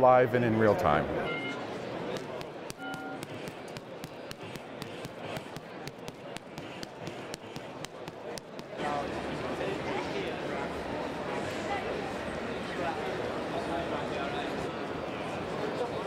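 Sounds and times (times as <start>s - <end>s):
background chatter: 0.0s - 16.0s
short electronic beeps: 1.2s - 1.7s, 2.8s - 3.3s
punches hitting punch bag: 2.1s - 8.8s.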